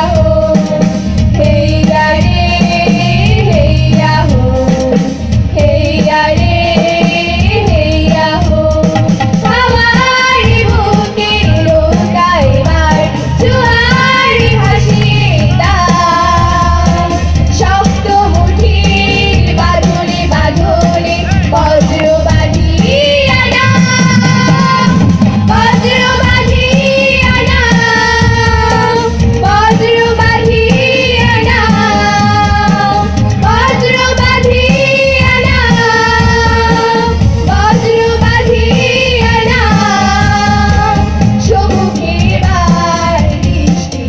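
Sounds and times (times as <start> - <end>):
amplified musical accompaniment: 0.0 - 44.0
children's choir singing: 9.5 - 17.2, 17.8 - 44.0.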